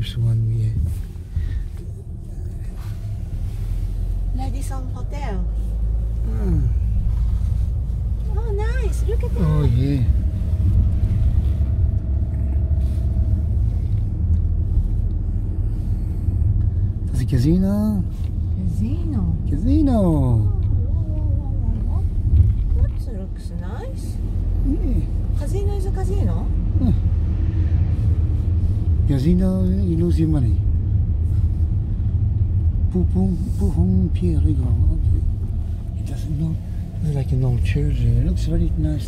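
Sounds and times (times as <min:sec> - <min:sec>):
car engine and road noise: 0:00.0 - 0:39.0.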